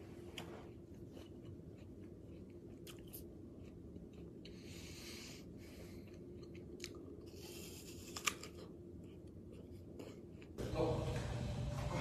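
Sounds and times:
room noise with low hum: 0:00.0 - 0:12.0
chewing apple: 0:00.4 - 0:10.6.

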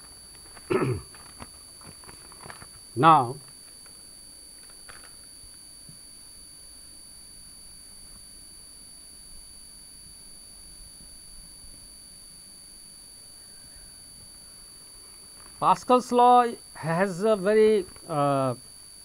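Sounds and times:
faint rustle: 0:00.0 - 0:06.4
faint high-pitched electrical whine: 0:00.0 - 0:19.0.

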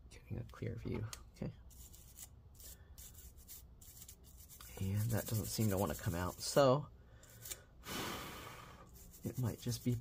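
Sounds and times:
scratchy scrubbing on circuit board: 0:01.7 - 0:06.6, 0:08.9 - 0:10.0.

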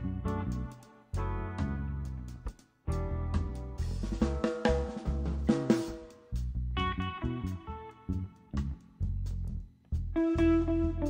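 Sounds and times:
drum kit: 0:00.0 - 0:10.6
electric bass: 0:00.0 - 0:11.0
electric guitar notes: 0:10.2 - 0:11.0.

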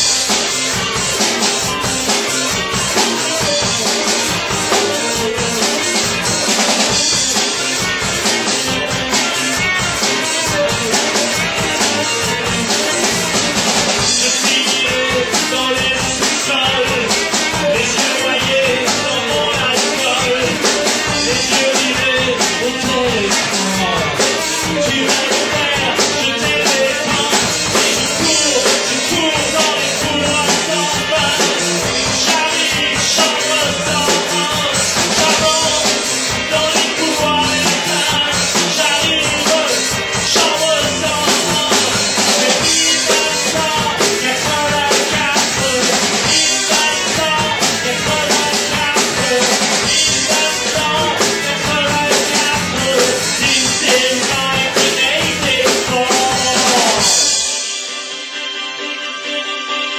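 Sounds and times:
drum kit beat: 0:00.0 - 0:58.7
electric guitars: 0:00.0 - 0:59.9
keyboard: 0:00.0 - 0:59.9
lead vocal singing: 0:01.2 - 0:57.7.

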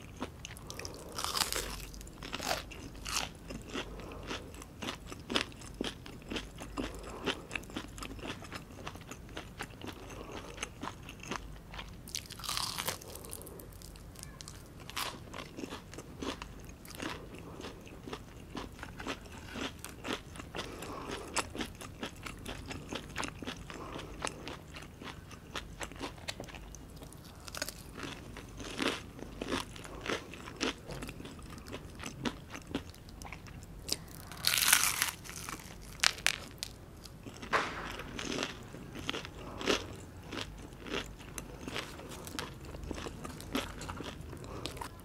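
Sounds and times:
crunchy chewing: 0:00.0 - 0:45.0.

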